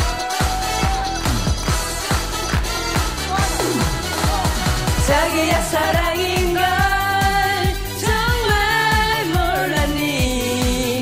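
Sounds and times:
upbeat pop song: 0.0 - 11.0.

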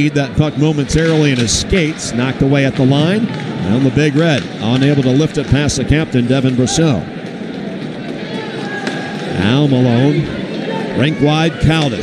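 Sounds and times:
crowd din: 0.0 - 12.0.

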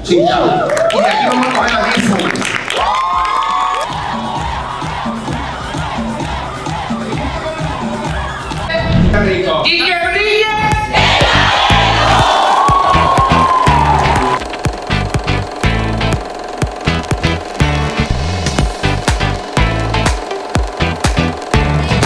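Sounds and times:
crowd noise: 2.8 - 8.7, 10.6 - 20.0
music with bass and drums: 10.7 - 22.0.

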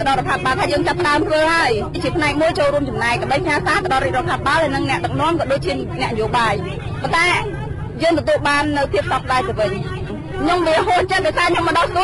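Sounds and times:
speech: 0.0 - 12.0
steady low rumble: 0.0 - 12.0.

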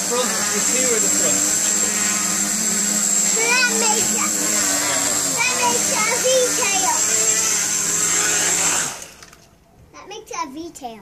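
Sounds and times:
tricopter motors whining: 0.0 - 9.6.

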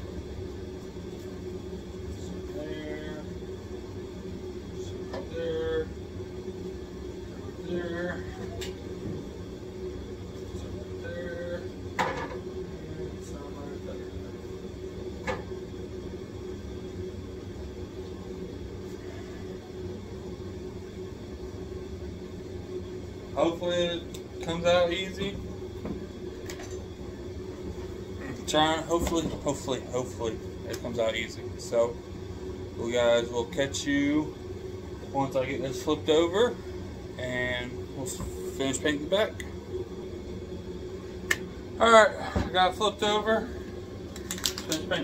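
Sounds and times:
steady hum: 0.0 - 45.0.

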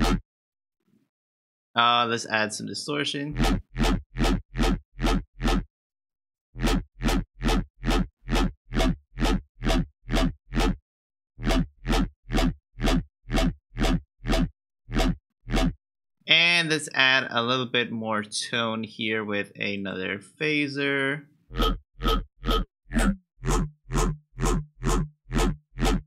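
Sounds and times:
distorted synth bass notes: 0.0 - 0.2, 3.3 - 5.6, 6.6 - 10.8, 11.4 - 15.8, 21.5 - 26.0.

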